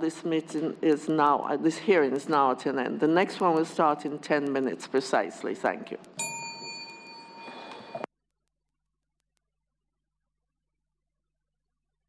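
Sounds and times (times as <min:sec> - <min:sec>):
small bell ringing: 0:06.2 - 0:08.1.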